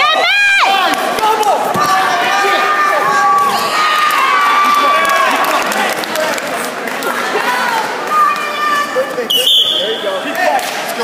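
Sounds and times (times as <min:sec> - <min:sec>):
spectators shouting: 0:00.0 - 0:06.0
referee's whistle blast: 0:09.3 - 0:10.2.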